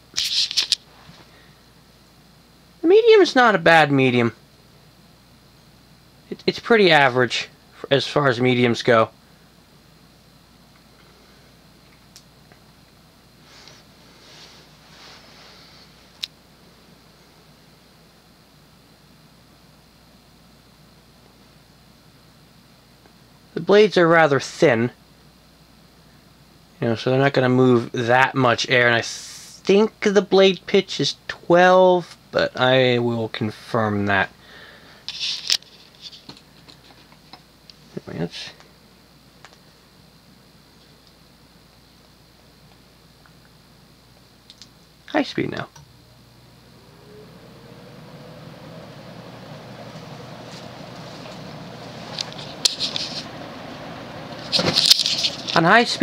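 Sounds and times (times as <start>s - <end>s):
ceiling fan humming: 0.0s - 56.0s
soft rustling: 13.4s - 16.2s, 48.7s - 53.5s.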